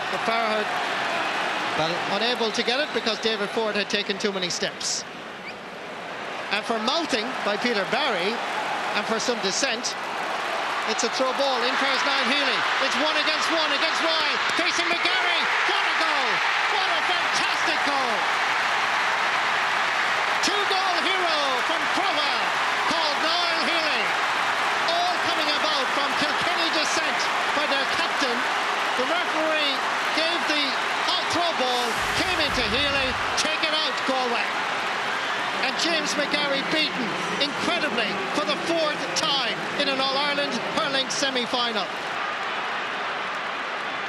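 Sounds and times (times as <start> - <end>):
applause: 0.0 - 4.5, 6.0 - 44.0
stadium crowd cheering: 0.0 - 44.0
voices shouting: 10.0 - 36.2.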